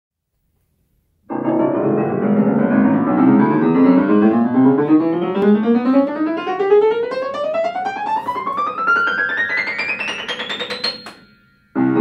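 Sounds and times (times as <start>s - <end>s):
upright piano rising notes: 1.3s - 12.0s.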